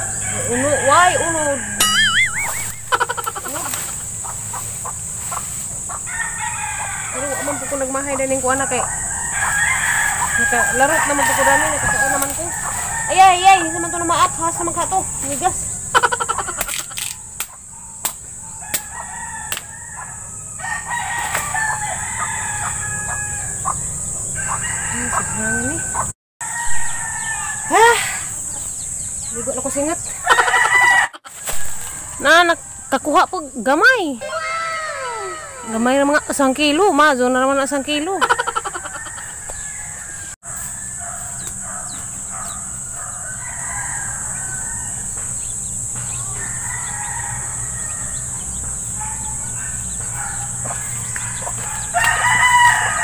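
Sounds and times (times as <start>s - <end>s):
rooster crowing: 0.0s - 3.1s, 5.4s - 16.6s, 17.9s - 28.7s, 30.2s - 33.0s, 34.2s - 37.1s, 38.2s - 53.0s.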